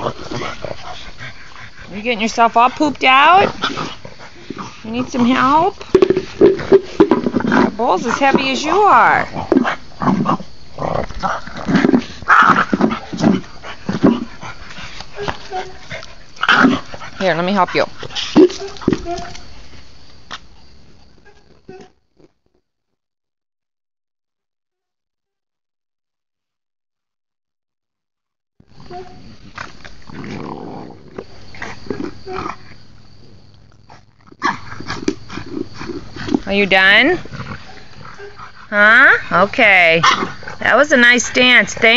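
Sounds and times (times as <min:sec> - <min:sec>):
dog growling and grunting: 0:00.0 - 0:01.9, 0:06.4 - 0:14.6, 0:28.8 - 0:32.8
metal bowl scraping on brick: 0:05.3 - 0:08.6.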